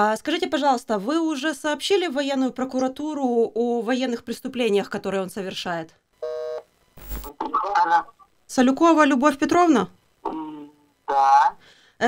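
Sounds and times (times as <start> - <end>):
electronic telephone beep: 6.2 - 8.0
phone-line crackle: 6.2 - 8.6.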